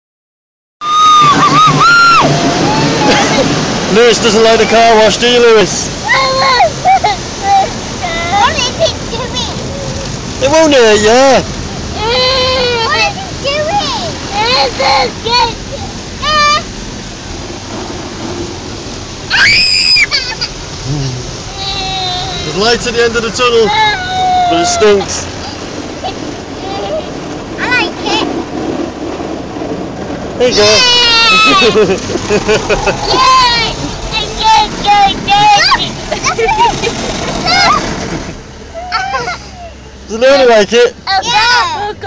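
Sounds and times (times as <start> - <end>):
high-pitched wail: 0.8 - 3.4, 19.3 - 20.2
child crying out: 0.8 - 3.5, 12.0 - 13.2, 19.3 - 20.5, 21.5 - 22.5, 23.6 - 25.6, 30.5 - 31.9, 37.5 - 37.8, 38.7 - 39.8
car wash running: 0.8 - 42.0
toddler wailing: 12.0 - 13.2, 21.5 - 22.6, 23.6 - 25.6, 30.5 - 31.8, 38.7 - 39.8.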